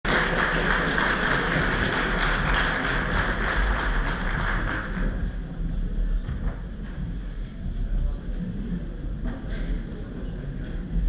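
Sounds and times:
audience applauding: 0.0s - 5.3s.

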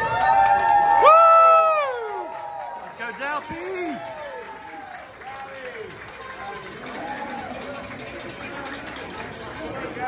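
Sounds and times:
fans cheering with high shouts: 0.0s - 7.8s.

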